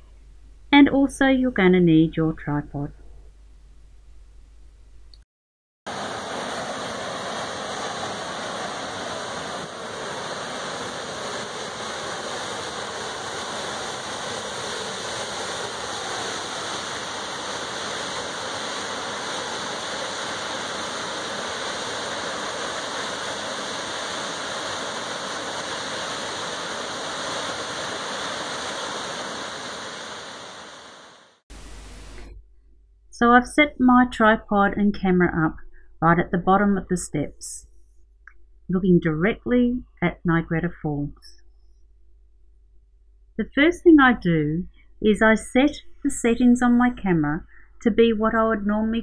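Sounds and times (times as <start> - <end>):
waterfall rushing into pool: 5.9 - 32.2.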